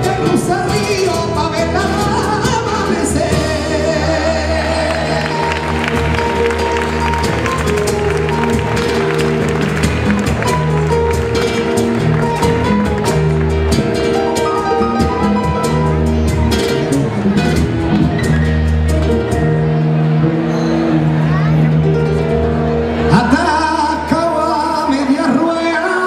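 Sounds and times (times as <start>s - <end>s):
man singing: 0.0s - 5.7s, 23.1s - 26.0s
low bass notes: 0.0s - 25.2s
guitar: 0.0s - 26.0s
live band music: 0.0s - 26.0s.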